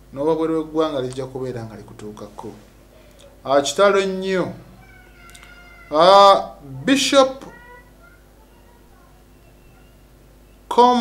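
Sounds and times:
man speaking: 0:00.1 - 0:02.7, 0:03.4 - 0:04.7, 0:05.9 - 0:07.5, 0:10.7 - 0:11.0.

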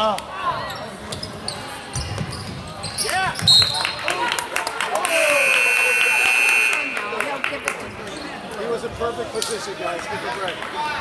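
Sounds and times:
crowd voices: 0:00.0 - 0:11.0
referee's whistle blast: 0:05.1 - 0:07.3
scoreboard buzzer: 0:05.3 - 0:07.4.

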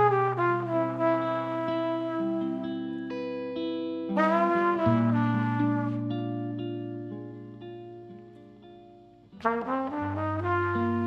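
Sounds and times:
guitar chords ringing: 0:00.0 - 0:11.0.

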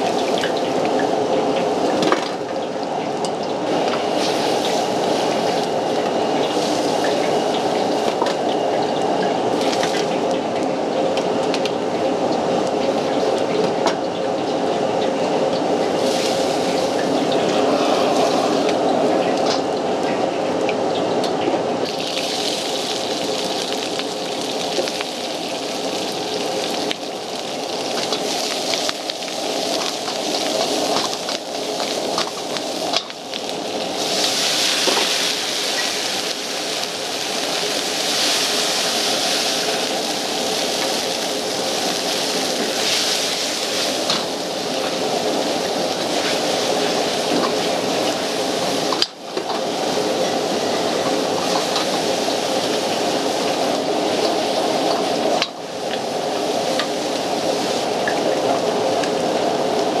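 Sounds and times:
food sizzling in wok: 0:00.0 - 0:02.4, 0:03.5 - 0:10.2, 0:15.8 - 0:19.2, 0:21.8 - 0:58.2
gas burner flame: 0:00.0 - 1:00.0.

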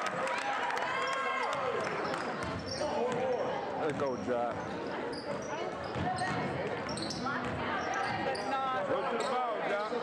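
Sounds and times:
sneaker squeaks: 0:02.0 - 0:10.0
basketball bouncing: 0:05.7 - 0:07.6.

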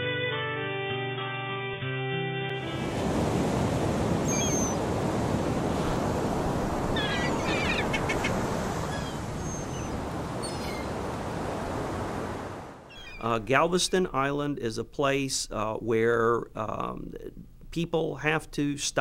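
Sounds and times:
music: 0:00.0 - 0:03.2
sea surf: 0:02.5 - 0:13.5
short bird calls: 0:04.3 - 0:04.8, 0:07.0 - 0:10.9, 0:12.9 - 0:13.3.

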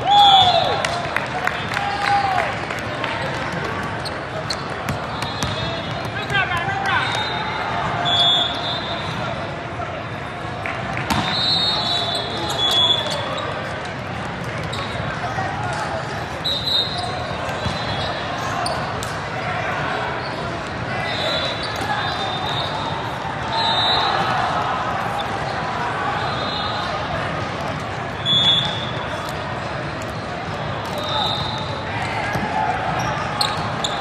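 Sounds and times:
many voices in a hall: 0:00.0 - 0:34.0
referee whistle blasts: 0:06.9 - 0:09.2, 0:11.1 - 0:13.2, 0:16.4 - 0:18.2, 0:21.1 - 0:24.3, 0:28.2 - 0:29.0, 0:30.9 - 0:31.8
ball hit: 0:11.1 - 0:11.4.

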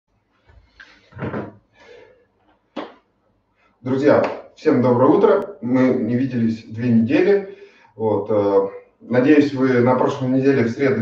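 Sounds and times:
object set down with dull thump: 0:01.1 - 0:01.6.

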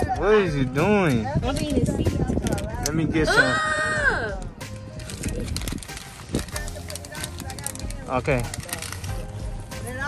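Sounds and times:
plastic bag crinkling: 0:04.8 - 0:09.8.

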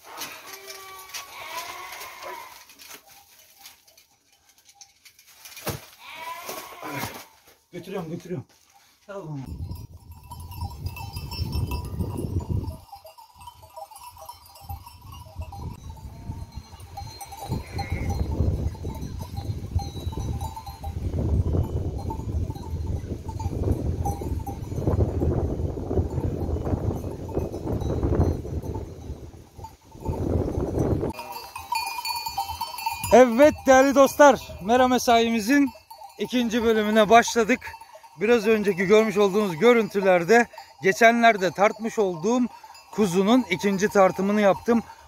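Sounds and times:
sheep bells clinking: 0:00.0 - 0:06.8, 0:07.4 - 0:45.0
wind on microphone: 0:09.5 - 0:12.8, 0:14.7 - 0:31.2.

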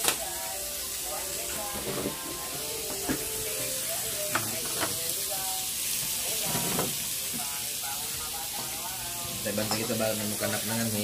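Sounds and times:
pork sizzling on grill pan: 0:00.0 - 0:11.0.

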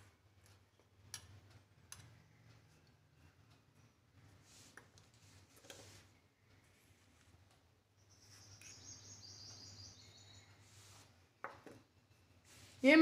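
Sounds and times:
faint high chirping: 0:07.9 - 0:10.8.

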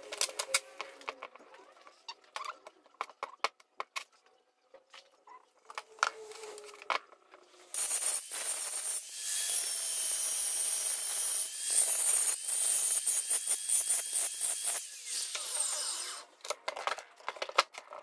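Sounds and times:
angle grinder grinding stone: 0:07.7 - 0:16.3.

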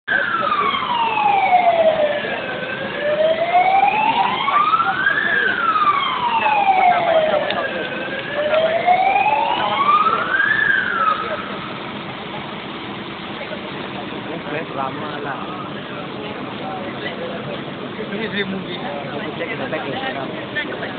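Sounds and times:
fire engine siren wailing: 0:00.1 - 0:12.6.

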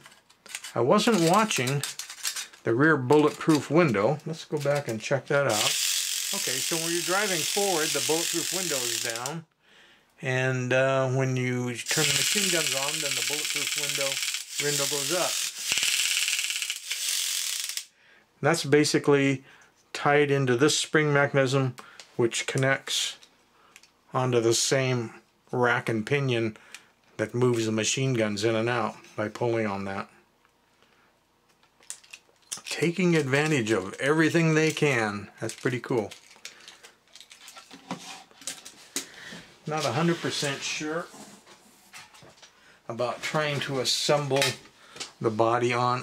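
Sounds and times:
small toy electric motor: 0:05.5 - 0:09.4, 0:11.8 - 0:17.9
toy clicker ratcheting rapidly: 0:05.5 - 0:09.4, 0:11.8 - 0:17.9.

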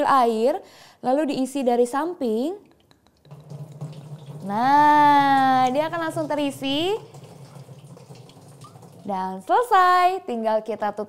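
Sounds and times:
water trickling into tank: 0:02.8 - 0:09.7.

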